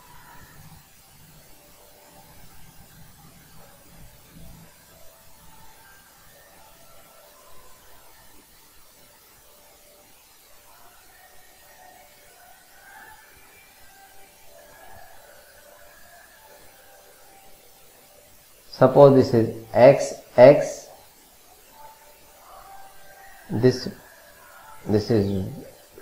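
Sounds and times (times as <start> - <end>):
steady hiss: 0.0 - 26.0.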